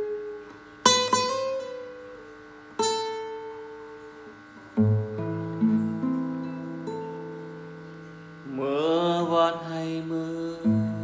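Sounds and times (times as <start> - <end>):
fingerpicked classical guitar: 0.0 - 11.0
man singing: 8.5 - 11.0.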